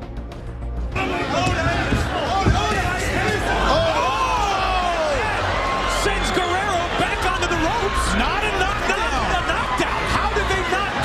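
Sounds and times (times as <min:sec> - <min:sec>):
crowd shouting: 0:00.9 - 0:11.0.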